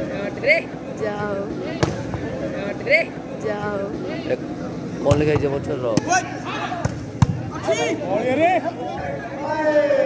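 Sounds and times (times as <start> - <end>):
volleyball hand slaps: 1.8 - 2.2.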